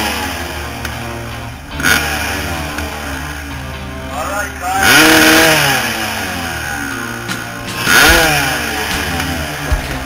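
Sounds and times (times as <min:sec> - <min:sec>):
dirt bike engine revving: 0:00.0 - 0:10.0
music playing: 0:00.0 - 0:10.0.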